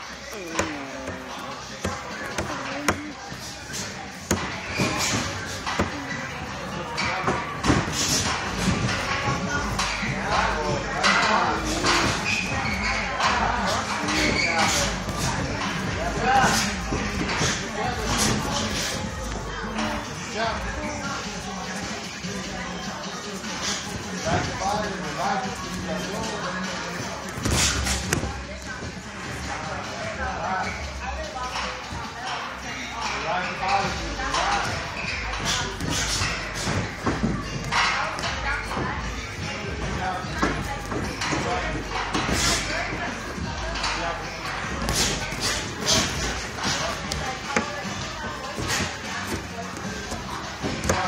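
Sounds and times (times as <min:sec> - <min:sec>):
thuds and scuffling in boxing ring: 0:00.4 - 0:30.1, 0:33.8 - 0:51.0.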